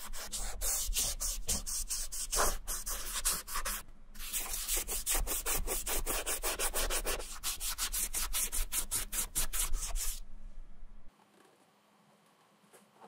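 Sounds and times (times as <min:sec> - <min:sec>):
cotton ball rubbing on sneaker: 0:00.0 - 0:10.2.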